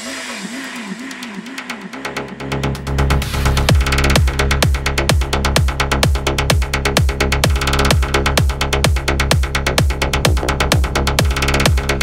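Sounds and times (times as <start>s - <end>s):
electronic dance drums and bass: 0.0s - 12.0s.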